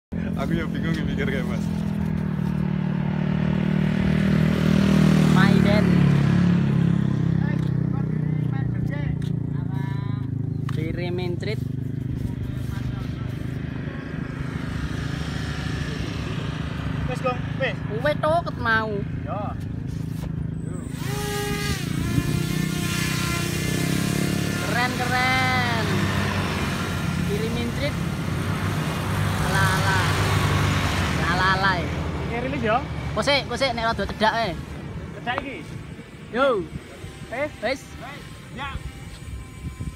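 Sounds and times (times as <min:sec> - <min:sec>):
outdoor noise haze: 0:00.1 - 0:39.9
low motor hum: 0:19.7 - 0:31.2, 0:35.8 - 0:39.9
model paramotor engine running: 0:20.9 - 0:30.0, 0:36.3 - 0:39.9.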